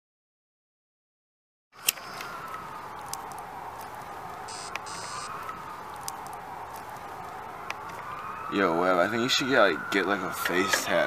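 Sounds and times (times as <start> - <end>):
faint clicks: 1.8 - 4.1, 4.7 - 8.2
siren wailing: 1.8 - 11.0
short high buzzes: 4.5 - 5.3.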